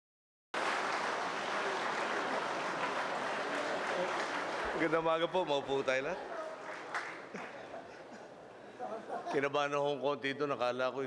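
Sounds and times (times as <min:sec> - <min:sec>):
audience applause: 0:00.6 - 0:07.9.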